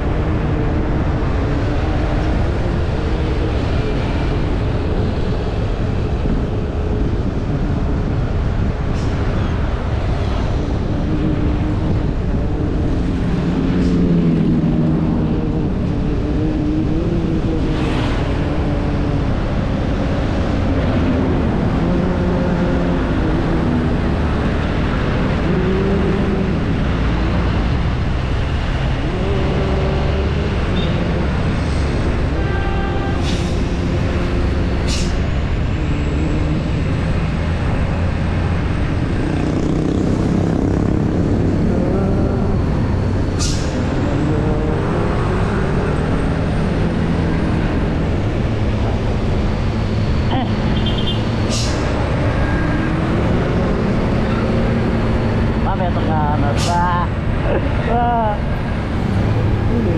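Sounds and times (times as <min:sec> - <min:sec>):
road noise: 0:00.0 - 0:59.9
vehicle engine rumble: 0:00.0 - 0:59.9.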